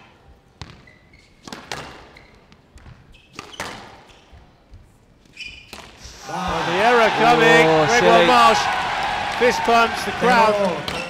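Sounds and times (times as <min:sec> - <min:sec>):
shoes squeaking on court floor: 0:00.5 - 0:06.7.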